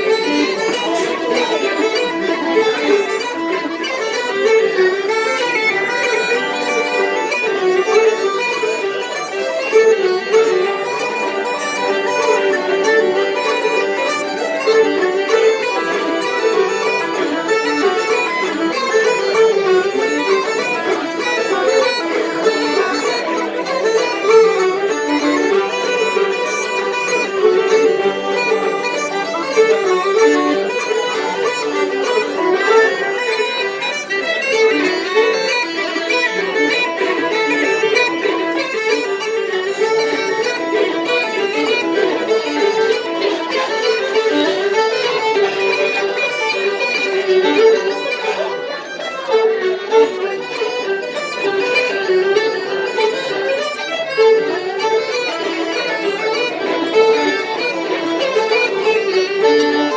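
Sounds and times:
fiddle and pipes playing a reel: 0:00.0 - 0:59.9.

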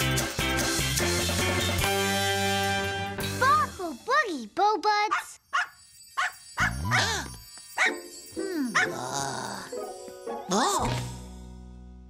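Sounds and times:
cartoon dog yapping: 0:05.1 - 0:08.0.

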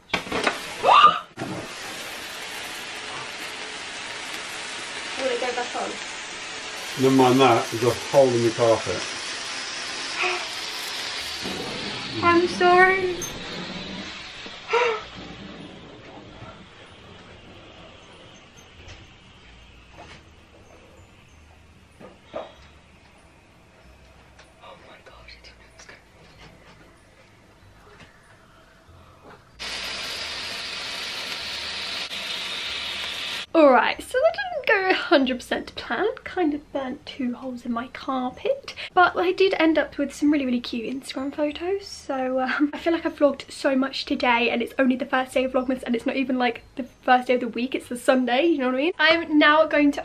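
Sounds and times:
sparkler fizzing and crackling: 0:00.0 - 0:16.0, 0:29.6 - 0:33.6.

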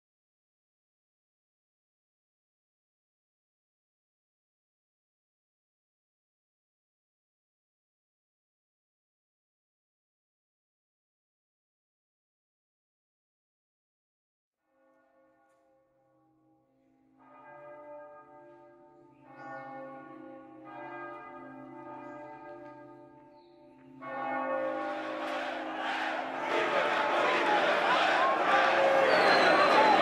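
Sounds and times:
church bell tolling: 0:17.0 - 0:30.0
crowd din: 0:24.6 - 0:30.0.

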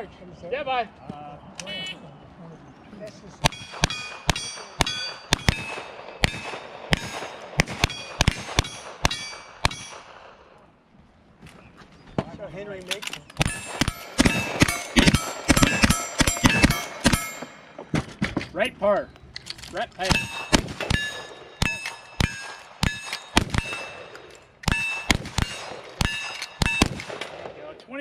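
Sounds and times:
steel target clanging: 0:03.4 - 0:10.2, 0:13.4 - 0:18.4, 0:20.0 - 0:27.4
rifle shots: 0:03.4 - 0:10.5, 0:13.4 - 0:18.1, 0:20.0 - 0:27.7.

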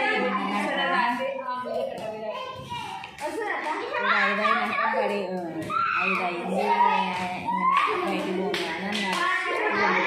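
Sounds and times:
children calling out: 0:01.7 - 0:10.0
sharp claps: 0:07.1 - 0:09.5.

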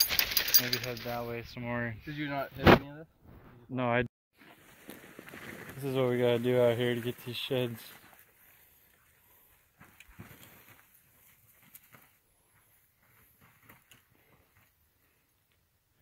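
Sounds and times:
footsteps on dry dirt: 0:04.5 - 0:15.2.

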